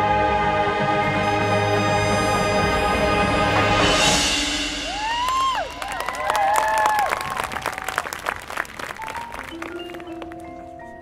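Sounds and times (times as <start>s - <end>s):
marching band chord: 0.0s - 6.8s
audience applause and cheers: 4.8s - 10.6s
soft mallet percussion notes: 9.0s - 11.0s.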